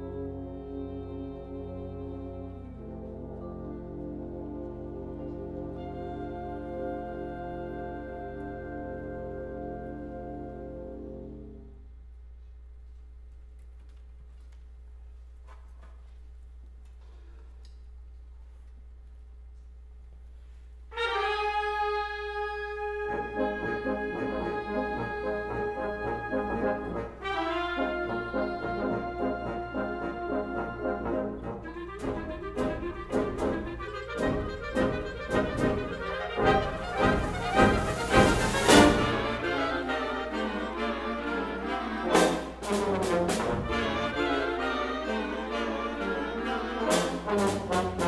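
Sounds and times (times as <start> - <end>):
concert wind band playing: 0.0 - 11.9, 20.9 - 48.0
percussion hits: 32.0 - 39.2.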